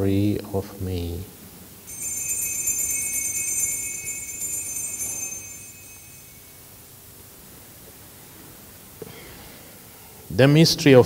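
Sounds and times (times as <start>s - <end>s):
altar bells jingling: 1.9s - 6.9s.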